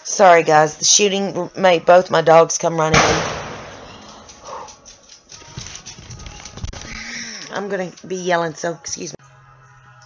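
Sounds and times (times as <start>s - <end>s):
shotgun blast: 2.9s - 4.5s.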